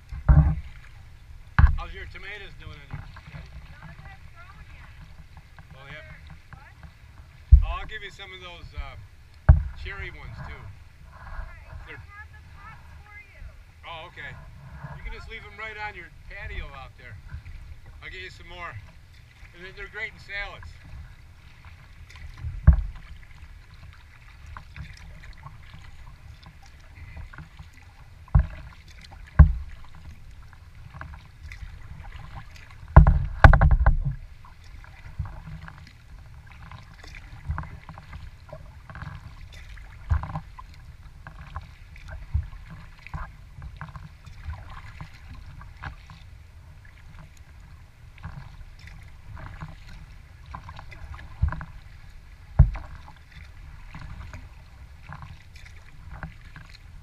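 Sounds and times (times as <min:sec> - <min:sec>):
water lapping against hull: 0:00.0 - 0:57.0
sharp knocks: 0:09.5 - 0:09.8, 0:33.0 - 0:34.2.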